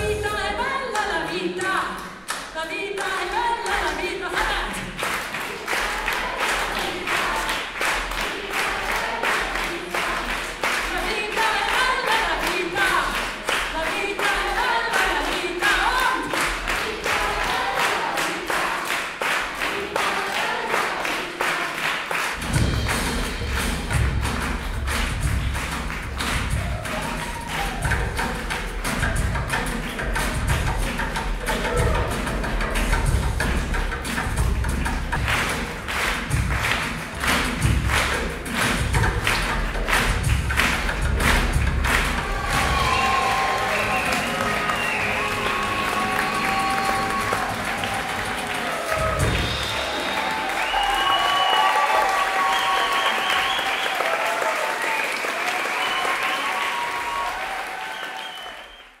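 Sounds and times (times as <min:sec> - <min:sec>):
audience applause and cheering: 0:01.9 - 0:59.0
live band playing: 0:22.3 - 0:52.5.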